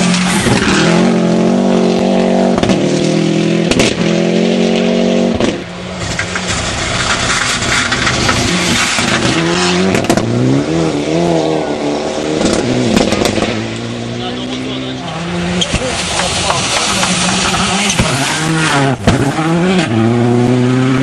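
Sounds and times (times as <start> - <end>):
rally car engine revving: 0.0 - 21.0.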